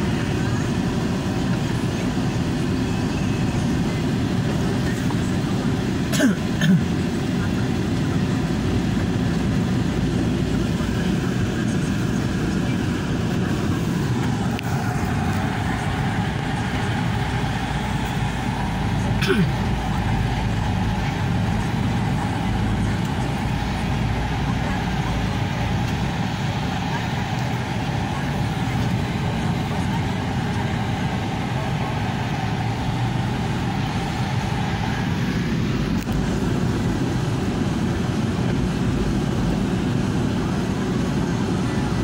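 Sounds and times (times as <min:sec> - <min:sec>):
vehicle engine and road noise: 0:00.0 - 0:42.0.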